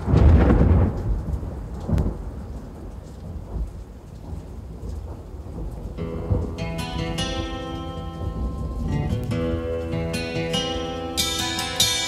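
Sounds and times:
thunder cracks and rumble: 0.0 - 9.4.

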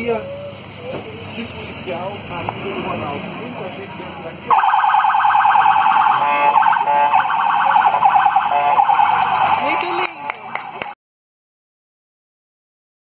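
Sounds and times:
police siren wailing: 4.5 - 11.0.

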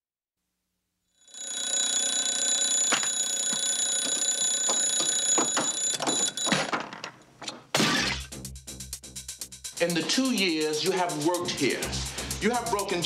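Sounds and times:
mechanical alarm clock ringing: 1.2 - 6.6.

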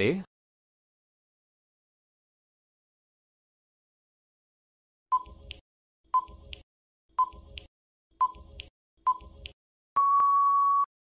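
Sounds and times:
countdown timer beeps: 6.2 - 6.6, 7.2 - 10.9.

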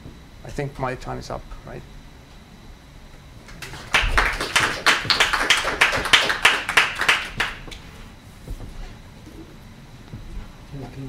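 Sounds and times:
audience applauding: 3.5 - 7.7.

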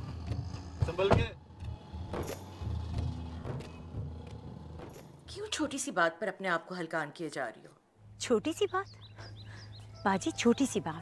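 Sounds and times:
car engine low rumble: 0.0 - 5.6.

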